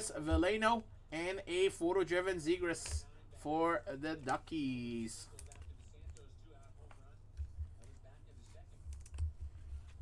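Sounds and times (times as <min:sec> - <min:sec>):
trading cards clicking and tapping: 0:02.7 - 0:03.1, 0:04.1 - 0:10.0.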